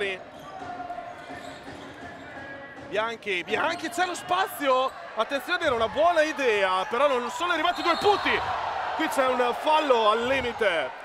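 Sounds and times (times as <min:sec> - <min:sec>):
low arena background: 0:00.0 - 0:11.0.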